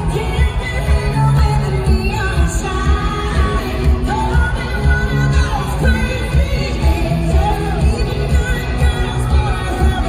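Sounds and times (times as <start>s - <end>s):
live pop-country band: 0.0s - 10.0s
woman singing: 0.0s - 10.0s.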